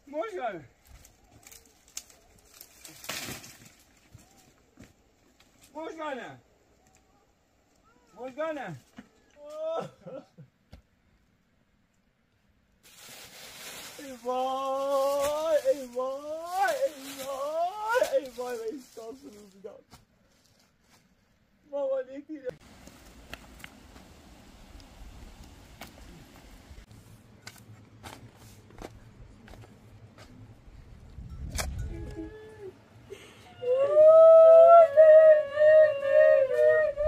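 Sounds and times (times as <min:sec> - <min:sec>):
person wailing: 0:31.9 - 0:32.7.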